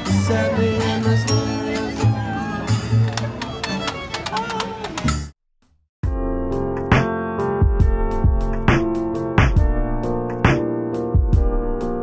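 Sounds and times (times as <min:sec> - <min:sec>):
person singing: 0:00.0 - 0:03.0
fiddle: 0:00.0 - 0:05.2
acoustic guitars: 0:00.0 - 0:05.3.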